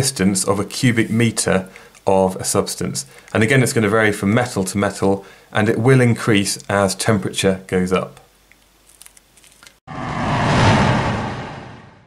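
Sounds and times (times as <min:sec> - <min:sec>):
whoosh sound effect: 0:09.9 - 0:12.0.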